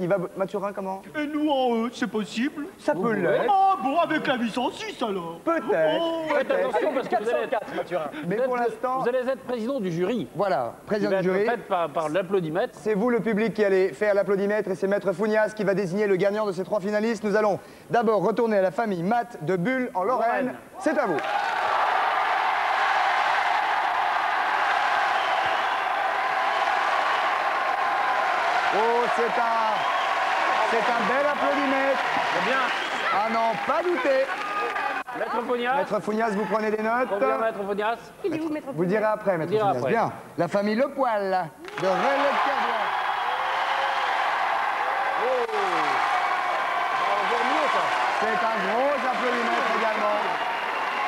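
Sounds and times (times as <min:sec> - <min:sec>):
audience applauding: 0:21.2 - 0:35.6, 0:41.6 - 0:51.0.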